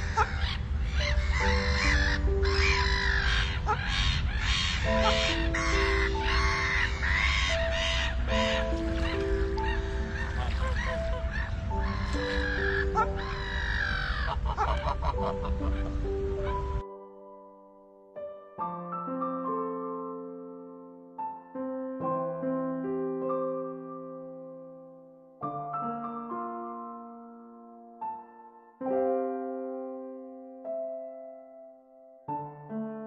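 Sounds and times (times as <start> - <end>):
geese calling: 0.0 - 16.8
slow soft music: 0.0 - 33.0.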